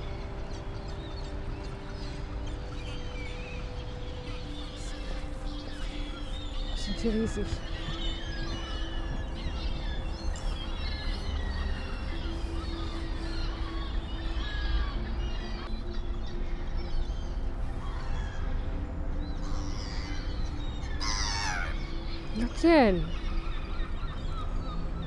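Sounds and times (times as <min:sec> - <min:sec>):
gulls and waterbirds calling: 0:00.0 - 0:25.0.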